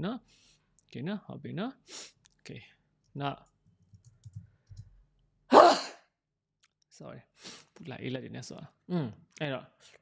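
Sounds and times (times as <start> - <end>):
faint keyboard typing: 3.4 - 5.0.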